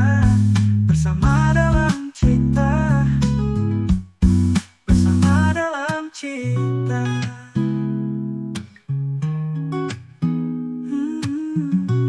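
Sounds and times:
acoustic guitar strumming: 0.0 - 12.0.

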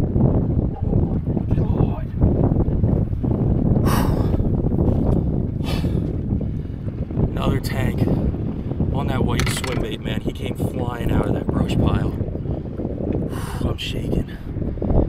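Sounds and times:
wind buffeting microphone: 0.0 - 15.0
man breathing heavily: 3.8 - 4.5, 5.6 - 6.2, 13.3 - 13.7.

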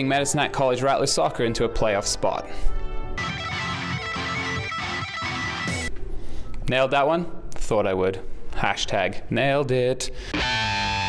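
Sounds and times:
electric guitar rock music: 3.2 - 5.9, 10.3 - 11.0.

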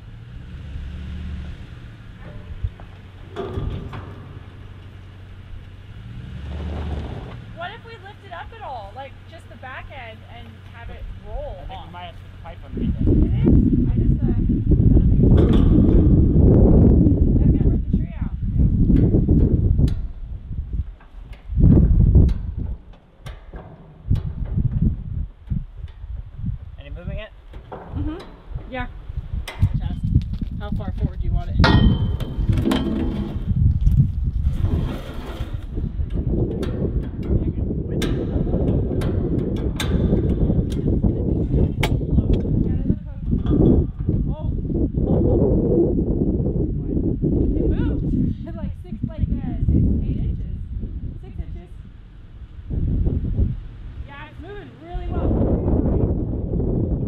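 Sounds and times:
steady low rumble: 0.0 - 57.0
jack metal clicks and clanks: 2.2 - 5.0, 22.2 - 24.8, 36.0 - 41.1.

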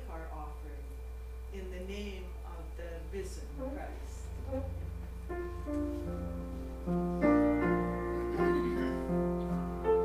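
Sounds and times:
low hum: 0.0 - 10.0
piano soft held notes: 4.3 - 10.0.

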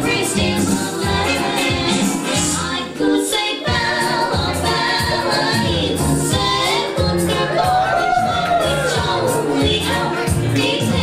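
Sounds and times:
band backing: 0.0 - 11.0
women singing in harmony: 0.0 - 11.0.

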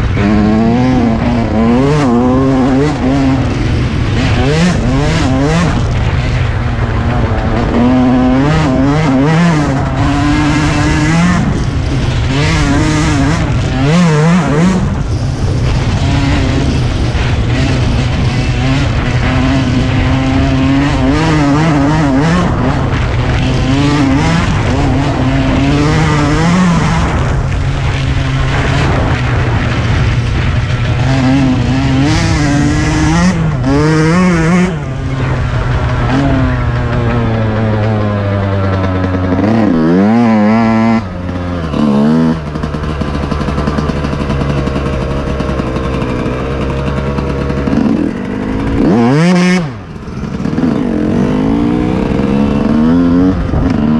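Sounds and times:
dirt bike engine revving: 0.0 - 53.9.

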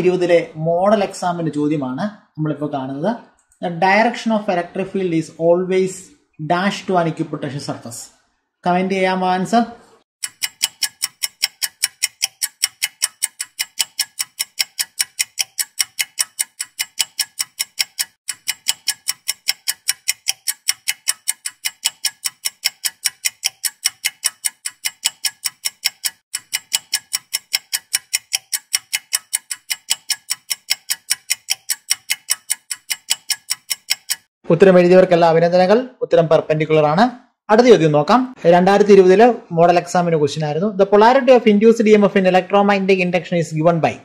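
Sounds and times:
clock ticking: 10.2 - 34.3.

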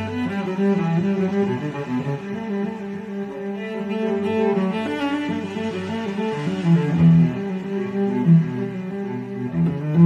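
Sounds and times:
solo cello bowed melody: 0.0 - 10.0.

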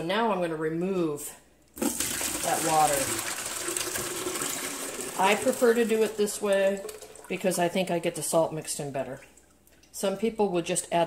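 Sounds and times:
water pouring into plastic pitcher: 1.8 - 7.8.

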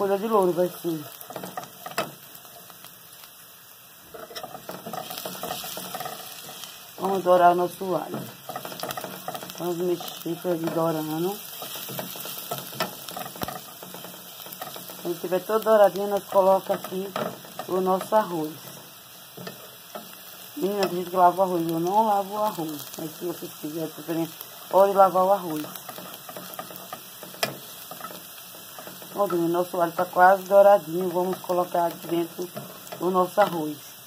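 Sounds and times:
garlic sizzling in oil: 0.0 - 34.0
spatula stirring in pot: 1.0 - 2.7, 4.1 - 21.0, 24.4 - 30.6, 31.2 - 33.5.

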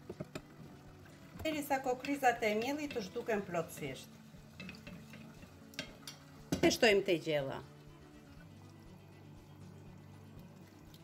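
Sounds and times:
metal spoon stirring in ceramic bowl: 2.1 - 6.8.

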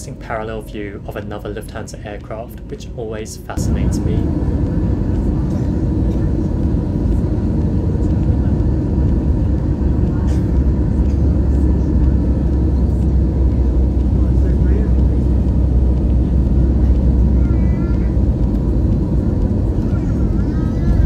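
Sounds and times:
airliner engines and airflow rumble: 0.0 - 21.0
deep drone: 0.0 - 21.0.

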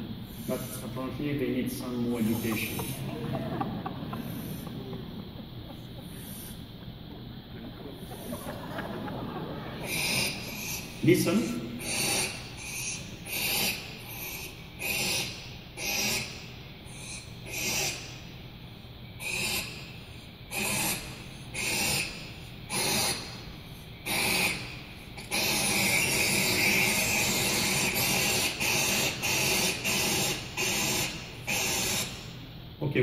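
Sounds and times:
owl chicks hissing calls: 0.0 - 1.1, 1.8 - 3.1, 3.8 - 7.1, 7.9 - 8.6, 9.8 - 32.5.

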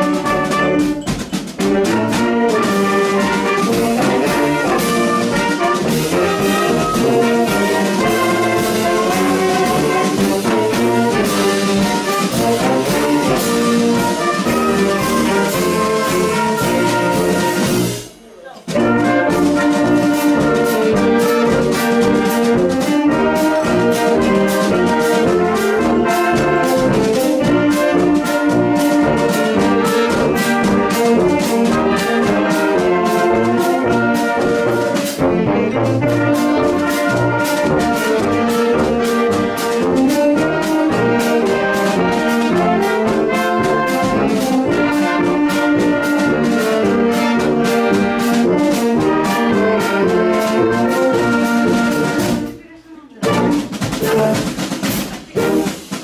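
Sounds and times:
marching band playing: 0.0 - 56.0
steady drum beat: 0.0 - 56.0.

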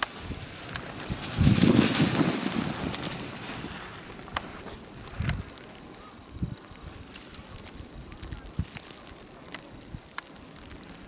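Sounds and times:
wind buffeting microphone: 0.0 - 11.0
faint clicks: 2.8 - 11.0.

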